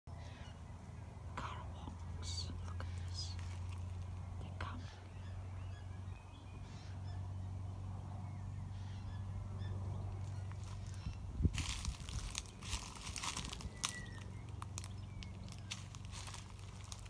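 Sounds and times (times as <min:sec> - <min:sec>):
steady low hum: 0:00.1 - 0:17.0
birds calling in short notes: 0:08.2 - 0:17.0.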